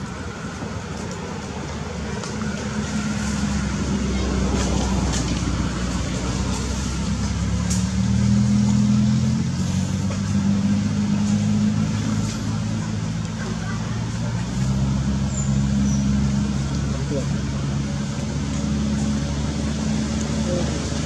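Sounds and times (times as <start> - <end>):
motor engine running: 1.4 - 21.0.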